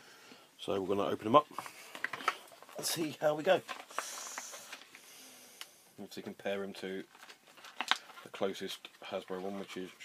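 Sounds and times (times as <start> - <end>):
packaging scraping: 1.5 - 5.1, 7.0 - 10.0.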